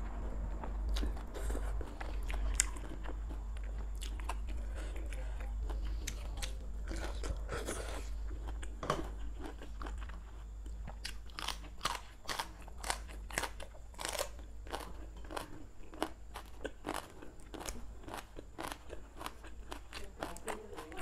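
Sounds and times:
crunching chewing of stems: 0.0 - 21.0.

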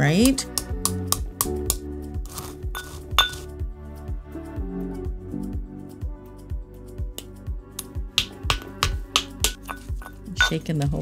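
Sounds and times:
background music with beat: 0.0 - 11.0
stone pestle clinking in mortar: 0.6 - 3.5, 8.2 - 10.6.

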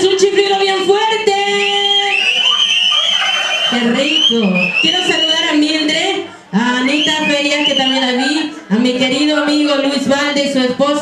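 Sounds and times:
men whistling loudly: 1.5 - 5.6, 6.8 - 8.4.

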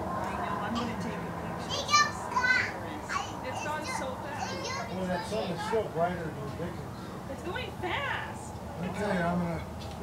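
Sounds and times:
group talking excitedly: 0.3 - 9.8.

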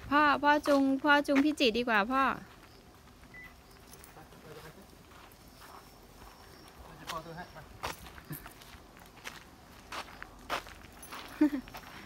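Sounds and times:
footsteps on gravel: 0.0 - 12.0.

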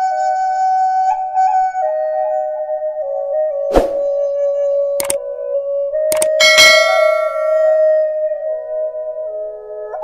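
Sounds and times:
soft flute-like background music: 0.0 - 10.0
mouse clicks: 6.1 - 6.4
bright bell ding: 6.2 - 7.9.

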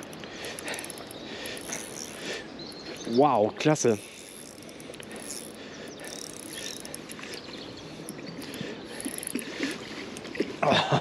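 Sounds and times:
fishing reel clicking and whirring: 0.0 - 10.3.

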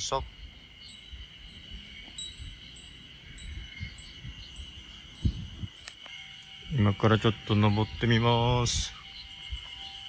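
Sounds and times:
insect chirps: 0.0 - 10.0
insects buzzing: 0.0 - 10.0
wind rumble: 0.0 - 10.0.

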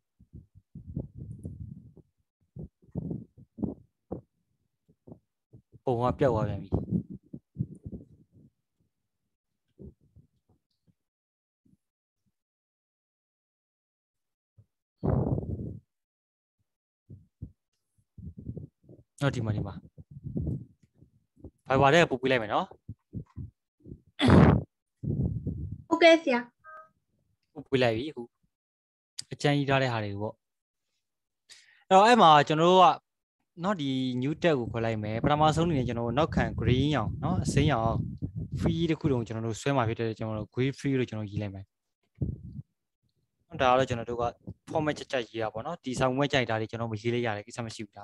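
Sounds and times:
soft low sounds: 0.2 - 4.3, 18.2 - 22.0, 22.8 - 25.9
person breathing into microphone: 2.6 - 4.2, 15.0 - 15.8, 20.1 - 20.7, 24.2 - 25.8.

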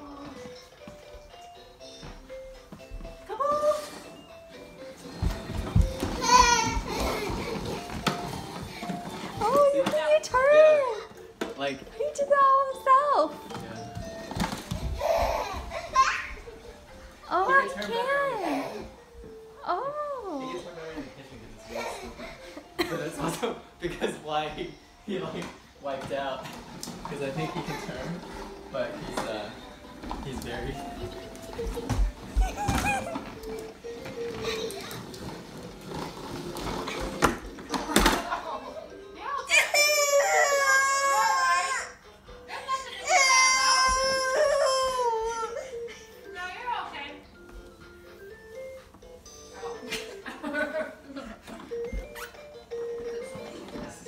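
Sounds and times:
baby crying loudly: 39.5 - 42.0, 42.9 - 45.6.

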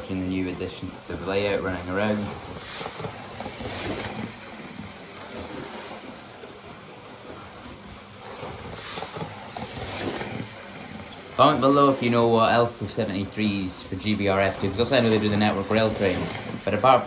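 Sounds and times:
model train motor whirring: 0.0 - 17.0.

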